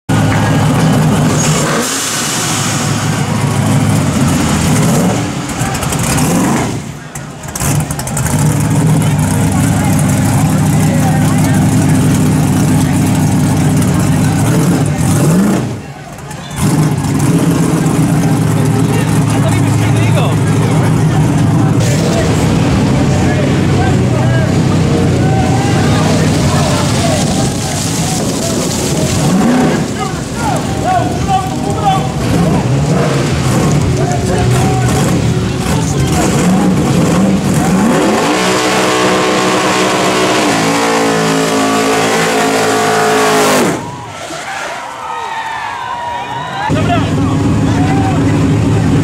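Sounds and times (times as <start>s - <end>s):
car engines revving: 0.0s - 49.0s
crowd voices: 0.1s - 49.0s.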